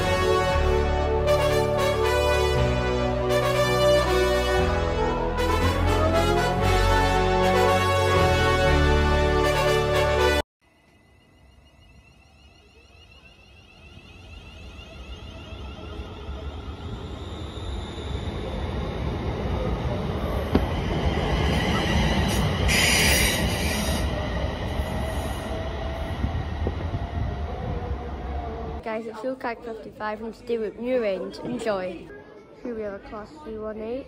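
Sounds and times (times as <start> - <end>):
electric train pulling away: 10.7 - 28.8
train wheel squeal: 10.9 - 27.8.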